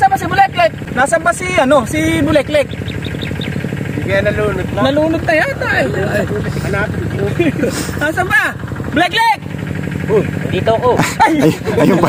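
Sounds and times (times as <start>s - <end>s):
people talking indistinctly: 0.0s - 12.0s
steady low hum: 0.0s - 12.0s.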